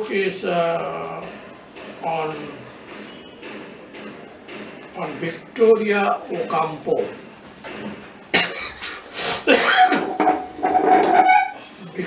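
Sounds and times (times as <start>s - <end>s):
man coughing: 8.3s - 8.8s, 9.4s - 10.1s
man clearing his throat: 9.5s - 10.1s.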